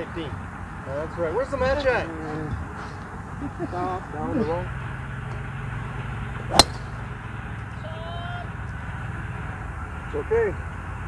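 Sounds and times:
steady low hum: 4.7s - 7.8s
golf club striking ball: 6.4s - 7.1s.

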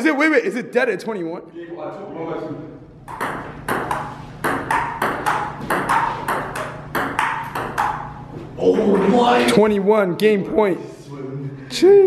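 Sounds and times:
ping pong ball hits: 3.0s - 8.2s.

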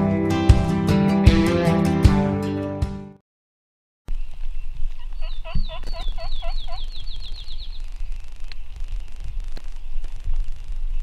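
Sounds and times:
turkey yelping: 5.0s - 7.7s.

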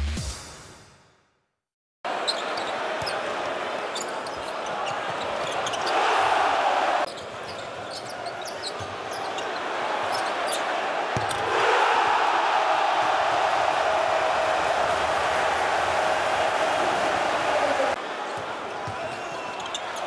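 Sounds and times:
crowd noise: 2.1s - 20.0s
sneakers squeaking on court: 2.2s - 3.3s, 3.9s - 6.0s, 7.1s - 11.4s, 18.3s - 20.0s.

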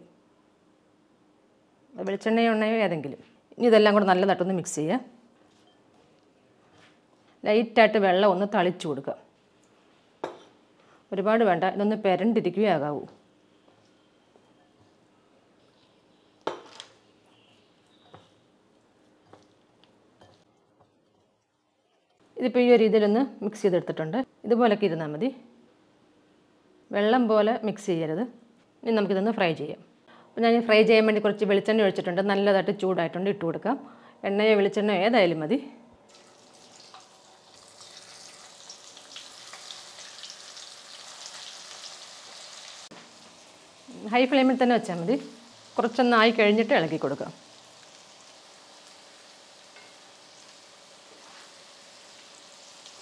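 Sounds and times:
vegetables sizzling in hot oil: 36.1s - 53.0s.

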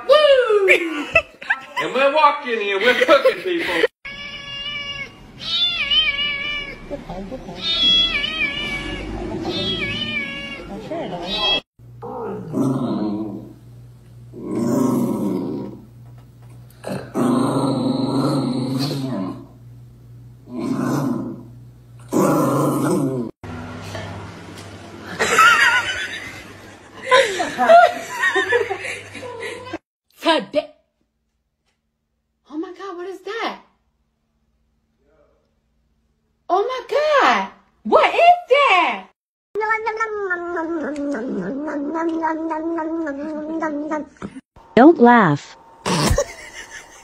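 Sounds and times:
cat meowing in distress: 4.1s - 6.8s, 7.6s - 11.6s
person chuckling and laughing: 27.0s - 29.8s, 45.8s - 47.0s.

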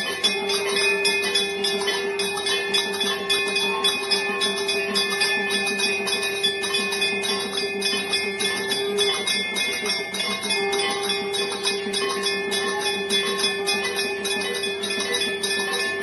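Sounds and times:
bells rung rapidly: 0.0s - 16.0s
steady held tone: 0.0s - 16.0s.

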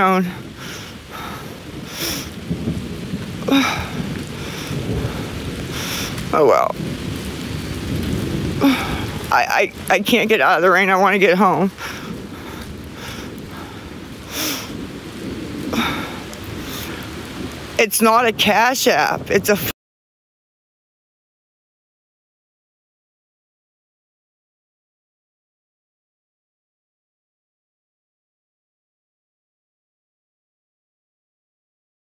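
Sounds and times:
low rumble: 0.0s - 18.6s
rain falling: 0.0s - 19.8s.

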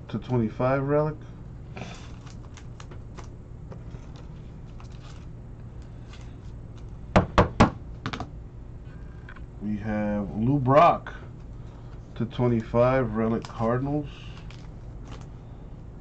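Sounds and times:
steady low hum: 0.0s - 16.0s
card handling clicks and rustles: 1.8s - 7.0s, 11.4s - 15.4s.

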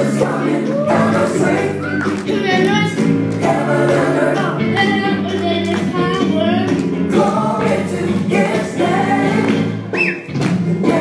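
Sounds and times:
choir-like backing vocals: 0.0s - 11.0s
musical accompaniment: 0.0s - 11.0s.

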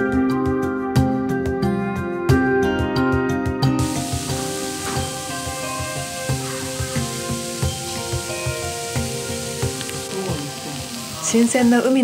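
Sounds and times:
background music: 0.0s - 12.0s
meat sizzling on a grill plate: 3.8s - 12.0s.

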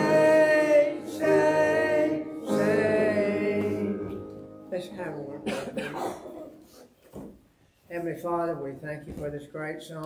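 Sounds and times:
man clearing his throat: 5.4s - 6.7s
man coughing: 5.4s - 6.8s.

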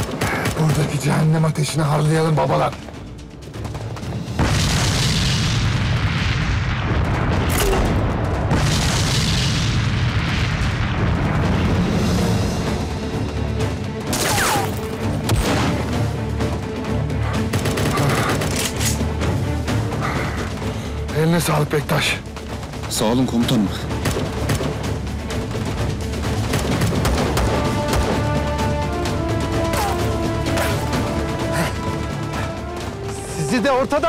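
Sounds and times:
background music: 0.0s - 34.0s
explosions: 4.3s - 12.3s
rapid rifle fire: 17.4s - 18.6s.

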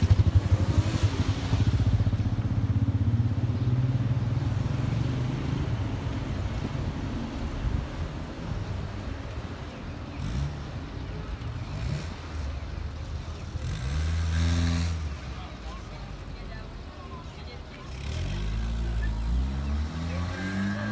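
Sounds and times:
street noise: 0.0s - 20.9s
car engine passing: 10.2s - 15.7s, 17.8s - 20.9s.

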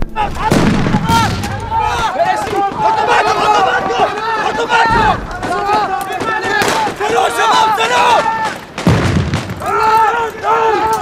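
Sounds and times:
men shouting: 0.0s - 8.6s, 9.6s - 11.0s.

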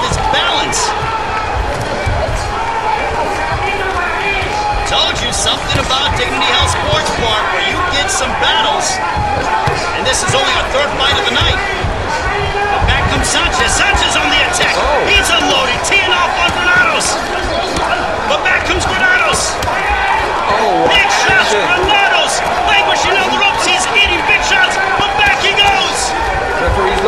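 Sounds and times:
voices calling out: 0.0s - 27.0s.

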